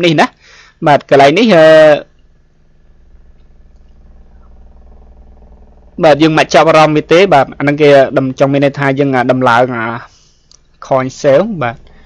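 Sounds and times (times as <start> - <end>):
faint low electrical hum: 0.0 - 12.0.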